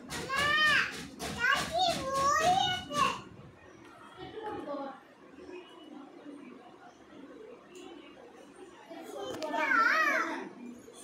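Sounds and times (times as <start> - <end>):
faint background talk: 0.0 - 11.0
young child's high-pitched voice: 0.1 - 3.4.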